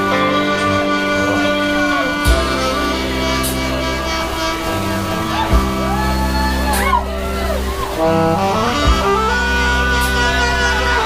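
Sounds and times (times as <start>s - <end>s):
live rock band playing: 0.0s - 11.0s
drum hit: 2.3s - 3.8s, 4.7s - 6.0s, 8.8s - 9.3s
shouted vocals: 4.2s - 8.4s.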